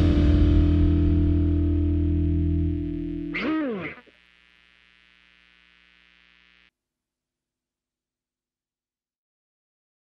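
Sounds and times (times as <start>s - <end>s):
bent electric guitar note: 0.0s - 4.2s
faint steady hum: 1.5s - 6.7s.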